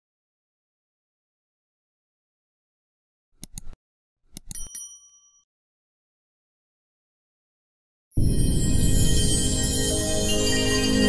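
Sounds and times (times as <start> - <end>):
quick clicks: 3.4 - 4.8
bright bell ding: 4.5 - 5.4, 8.2 - 11.0.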